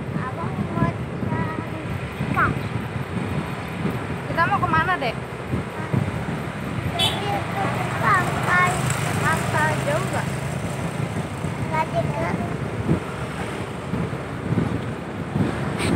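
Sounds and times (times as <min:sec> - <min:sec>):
wind and road noise: 0:00.0 - 0:15.9
motorcycle engine running: 0:01.6 - 0:15.6.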